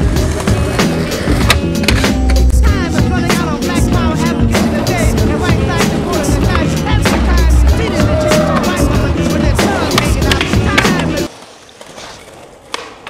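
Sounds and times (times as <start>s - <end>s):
skateboard popping: 0.0s - 2.5s, 8.2s - 13.0s
skateboard wheels rolling on pavement: 0.0s - 13.0s
hip-hop track with vocals: 0.9s - 11.3s.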